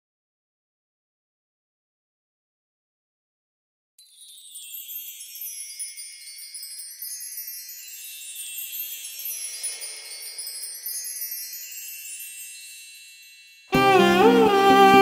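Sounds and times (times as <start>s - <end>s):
tinkling wind chimes: 4.0s - 15.0s.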